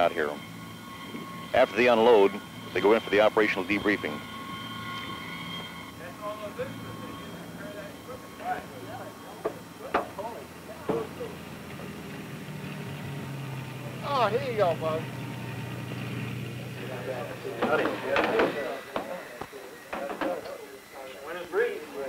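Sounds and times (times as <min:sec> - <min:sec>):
low engine hum: 0:00.0 - 0:19.5
high steady whine: 0:00.0 - 0:22.0
faint distant voices: 0:05.9 - 0:12.0, 0:16.7 - 0:22.0.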